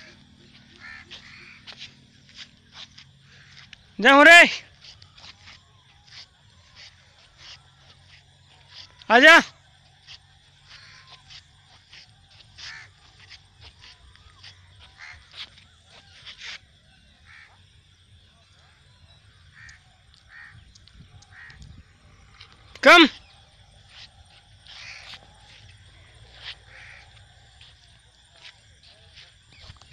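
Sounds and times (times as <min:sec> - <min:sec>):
birds calling: 0:00.0 - 0:09.2, 0:09.8 - 0:17.6, 0:18.3 - 0:29.9.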